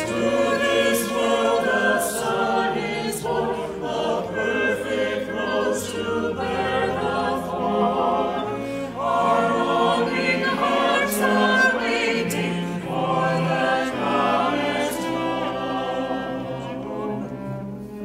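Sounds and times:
choir singing in harmony: 0:00.0 - 0:18.0.

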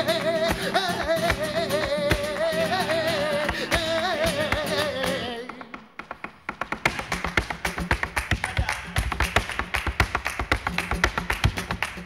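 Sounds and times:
person singing: 0:00.0 - 0:05.8
heeled shoes tapping on stage floor: 0:03.5 - 0:12.0.

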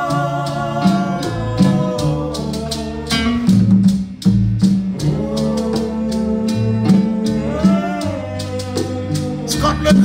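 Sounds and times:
acoustic guitar: 0:00.0 - 0:10.0
bass: 0:00.0 - 0:10.0.

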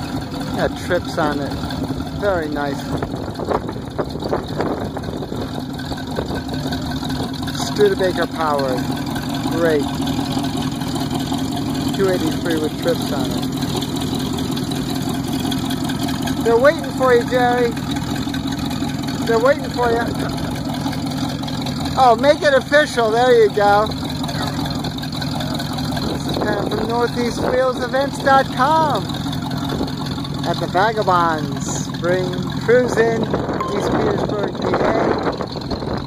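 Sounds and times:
car engine idling: 0:00.0 - 0:36.0.

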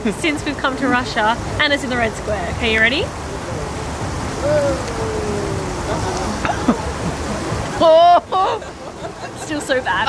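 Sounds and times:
rushing outdoor background noise: 0:00.0 - 0:10.0
drawn-out hum-like vocal sound: 0:01.3 - 0:09.4.

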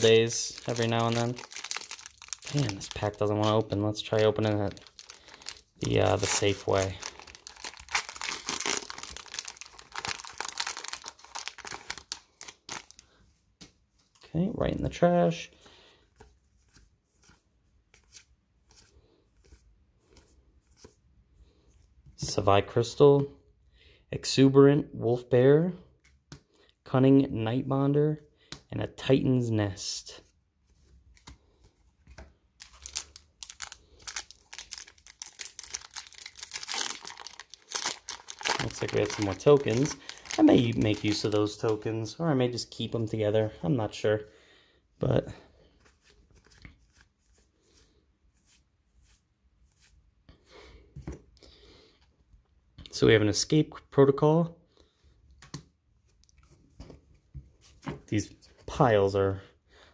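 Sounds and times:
foil wrapper crinkling and tearing: 0:00.0 - 0:13.1, 0:32.6 - 0:41.8.

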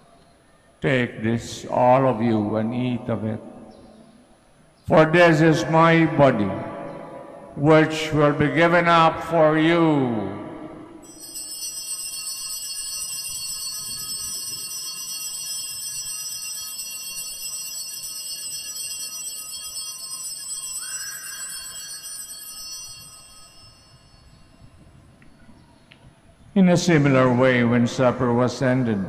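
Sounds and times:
altar bells jingling: 0:11.0 - 0:24.6.

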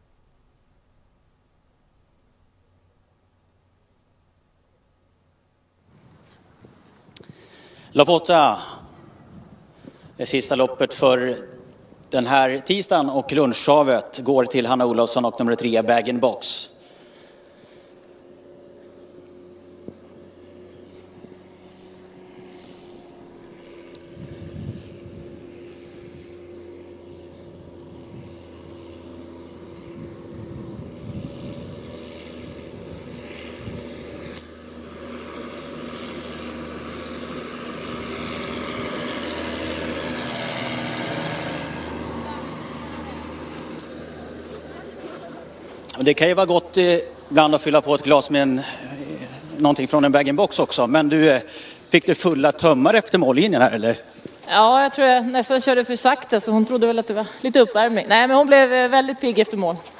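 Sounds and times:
passing engine hum: 0:05.8 - 0:59.9.

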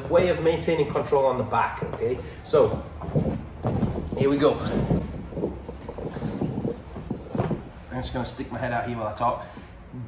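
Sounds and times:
low microphone rumble: 0:02.1 - 0:08.6.

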